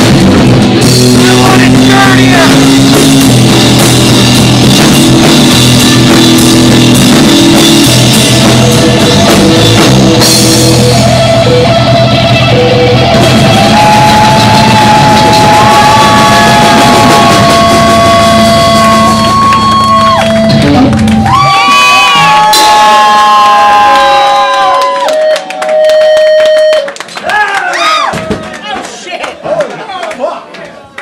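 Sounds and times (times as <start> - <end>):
guitar feedback whine: 0.0 - 21.7
rock band playing: 0.0 - 23.9
crowd shouting and whooping: 12.7 - 29.9.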